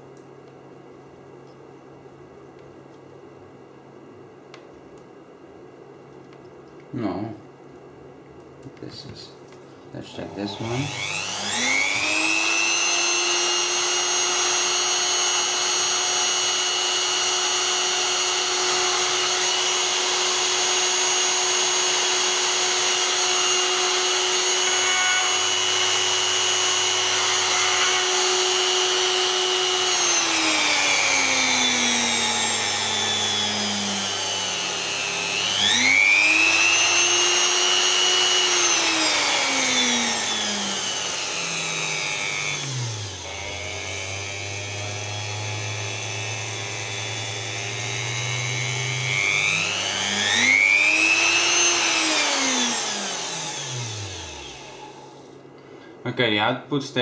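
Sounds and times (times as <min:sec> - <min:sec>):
motor spinning with high whine: 0:10.1 - 0:55.2.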